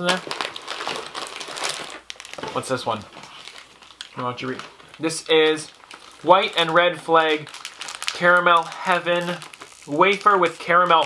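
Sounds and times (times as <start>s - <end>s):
plastic snack wrappers crinkling: 0.0s - 11.0s.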